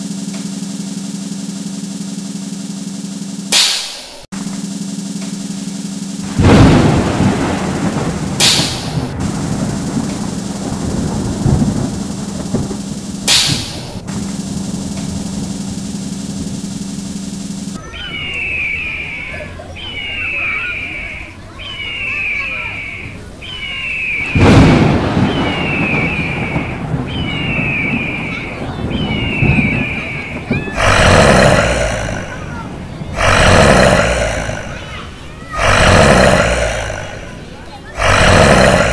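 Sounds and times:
loud rushing hissing burst: 0:00.0 - 0:17.8, 0:29.2 - 0:38.9
low sound system hum: 0:00.0 - 0:38.9
thunder rumble: 0:06.2 - 0:18.4, 0:24.1 - 0:38.9
smoke jet hisses: 0:08.4 - 0:16.8.

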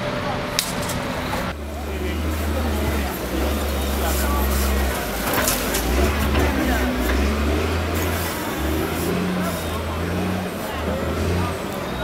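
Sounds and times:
indistinct background voices: 0:00.0 - 0:12.0.

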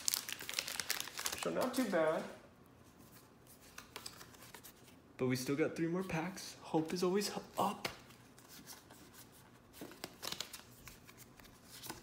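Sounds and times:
trading cards rustling and flicking: 0:00.0 - 0:02.3, 0:03.0 - 0:05.0, 0:06.8 - 0:12.0.

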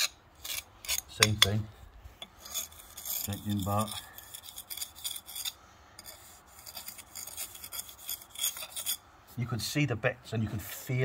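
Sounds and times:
steel bar scraping mortar: 0:00.0 - 0:09.0.

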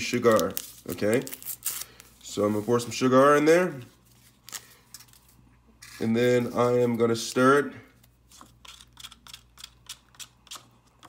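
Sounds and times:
paper rustling: 0:00.0 - 0:03.1.

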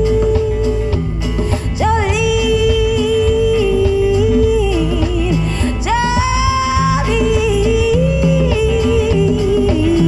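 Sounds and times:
bass guitar: 0:00.0 - 0:10.0
drums: 0:00.0 - 0:10.0
electric guitar: 0:00.0 - 0:10.0
woman singing: 0:00.0 - 0:10.0.

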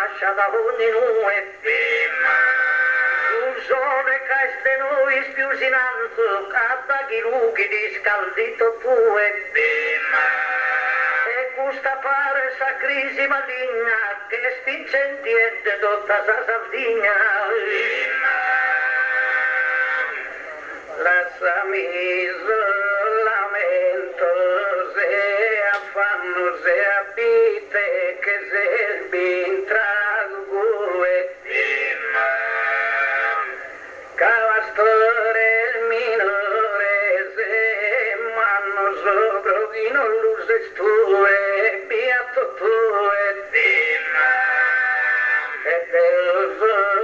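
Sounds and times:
man singing into microphone: 0:00.0 - 0:47.0.

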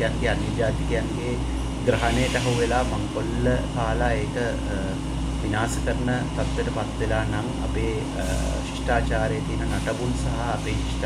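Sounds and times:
man talking: 0:00.0 - 0:11.0
steady low hum: 0:00.0 - 0:11.0.

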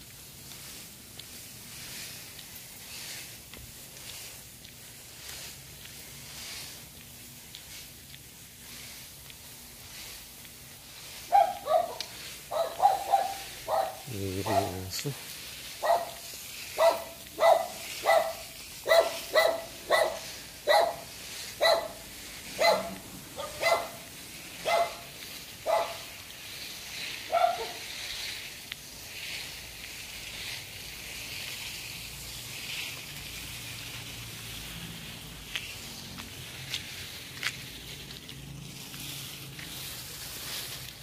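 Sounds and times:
dog barking: 0:11.3 - 0:14.9, 0:15.8 - 0:16.2, 0:16.8 - 0:22.0, 0:22.6 - 0:26.1, 0:27.3 - 0:27.8.

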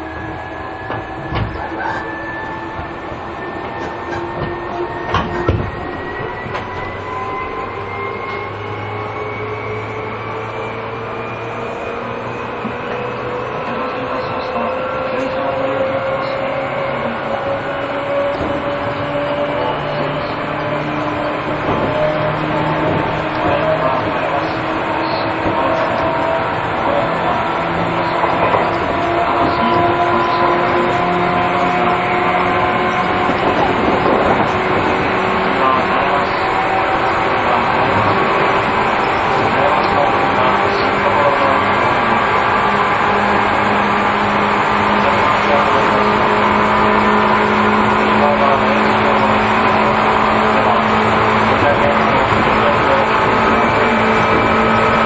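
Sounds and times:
electric train motor whine: 0:00.0 - 0:55.0
rumble of rails: 0:00.0 - 0:55.0
traction equipment humming tones: 0:00.0 - 0:55.0.

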